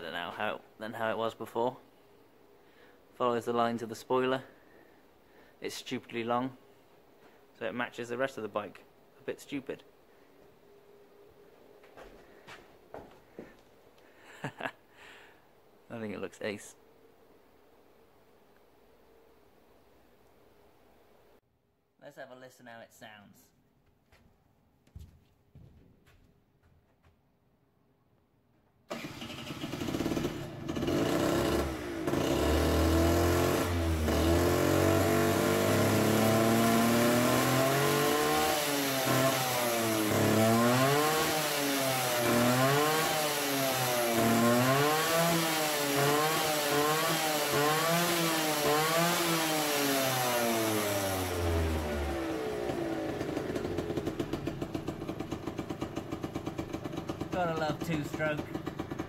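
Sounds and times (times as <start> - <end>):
scooter engine revving: 28.9 - 59.0.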